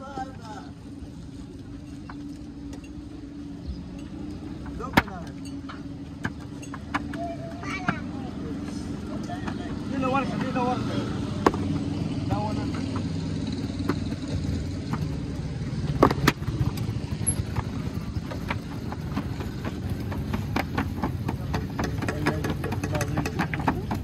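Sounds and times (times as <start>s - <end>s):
voices: 0.0s - 16.6s, 17.4s - 24.0s
engine idling: 0.5s - 24.0s.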